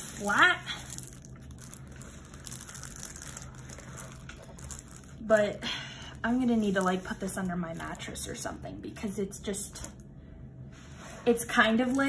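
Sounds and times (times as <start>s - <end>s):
plastic film crinkling: 0.0s - 8.2s.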